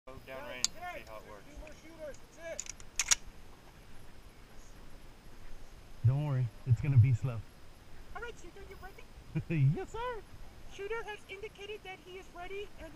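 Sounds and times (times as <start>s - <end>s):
sharp clicks: 2.1s - 3.2s.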